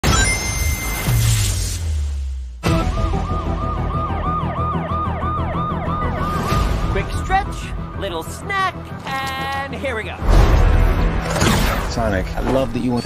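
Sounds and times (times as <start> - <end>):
police siren yelping: 3.2 - 6.8.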